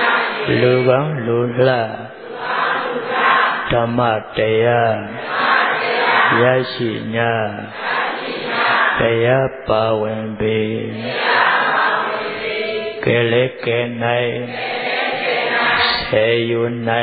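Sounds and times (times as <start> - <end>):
man chanting: 0.5 - 2.2, 3.6 - 5.2, 6.3 - 7.8, 9.0 - 11.2, 13.0 - 14.6, 15.8 - 17.0.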